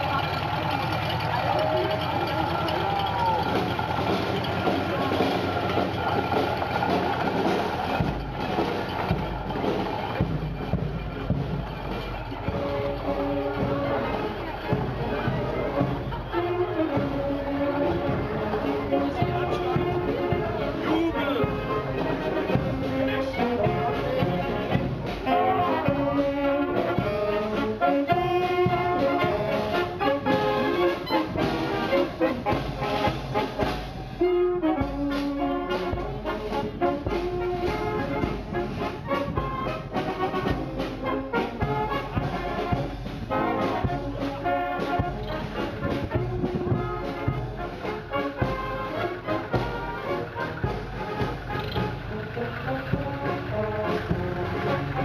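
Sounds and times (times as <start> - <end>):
marching band playing: 0.0 - 55.0.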